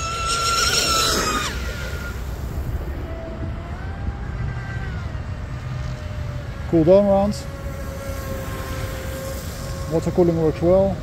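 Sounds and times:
electric motor whining: 0:00.0 - 0:11.0.

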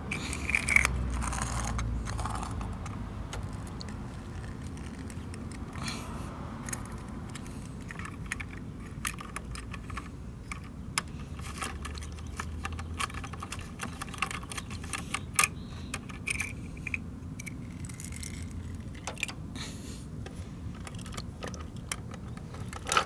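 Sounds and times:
low steady hum: 0:00.0 - 0:23.0
small plastic clicks and rattles: 0:06.6 - 0:19.4, 0:20.7 - 0:23.0.

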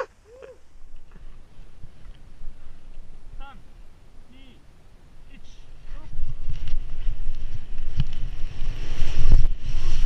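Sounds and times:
person whooping: 0:00.0 - 0:00.6
skis rushing through powder snow: 0:05.8 - 0:10.0.

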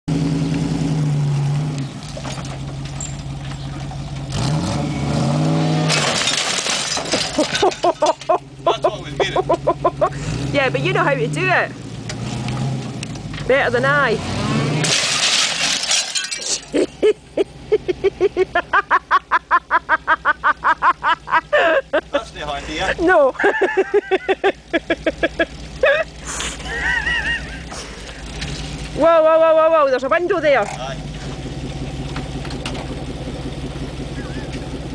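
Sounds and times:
engine running low and steady: 0:00.1 - 0:11.1, 0:16.8 - 0:34.9
vehicle engine revving hard: 0:04.3 - 0:06.2, 0:09.6 - 0:15.2
person laughing hard: 0:07.4 - 0:10.3, 0:16.7 - 0:28.0, 0:34.1 - 0:34.7.

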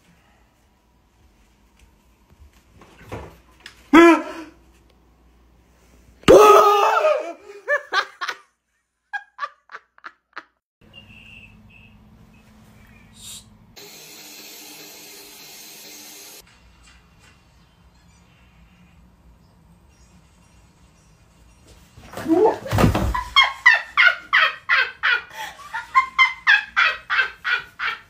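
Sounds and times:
person laughing loudly: 0:06.3 - 0:08.4, 0:22.2 - 0:28.0.

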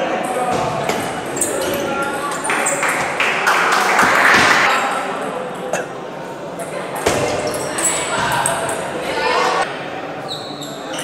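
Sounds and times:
crowd chatter in a large hall: 0:00.0 - 0:11.0.

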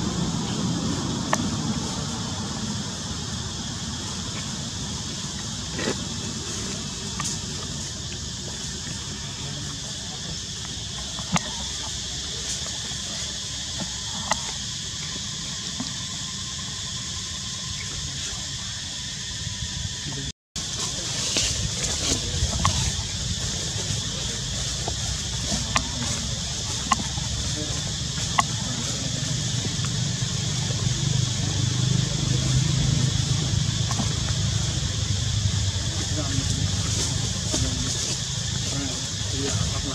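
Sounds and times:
steady outdoor hiss: 0:00.0 - 0:39.9
low rumble: 0:19.2 - 0:39.9.

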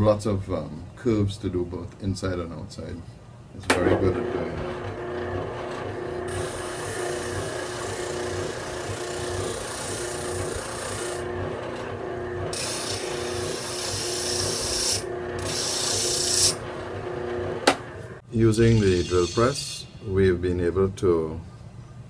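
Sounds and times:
sander motor hum: 0:04.0 - 0:18.2
wood rasping on sanding drum: 0:06.3 - 0:11.2, 0:12.5 - 0:16.6.

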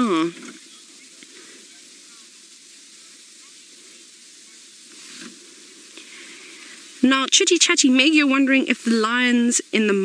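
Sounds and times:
faint outdoor bush hiss: 0:00.0 - 0:10.0
soft rustle: 0:00.0 - 0:10.0.

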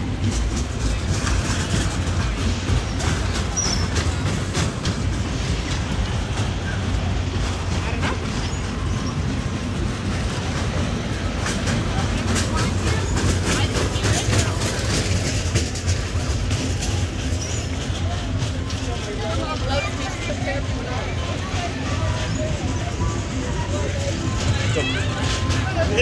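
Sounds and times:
crowd voices: 0:00.0 - 0:26.0
roller coaster rattling on track: 0:00.0 - 0:26.0.

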